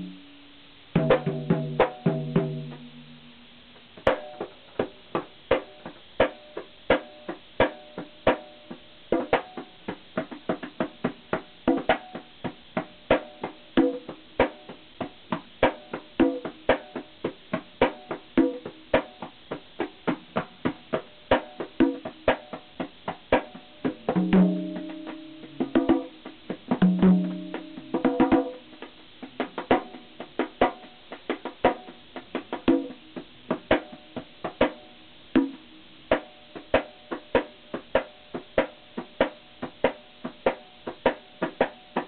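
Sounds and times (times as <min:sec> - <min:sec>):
conga hand drumming: 0:00.9 - 0:03.3, 0:04.0 - 0:42.0.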